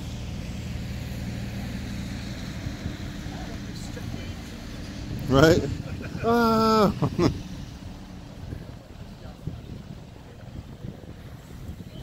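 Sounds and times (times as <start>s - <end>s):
engine hum: 0.0s - 12.0s.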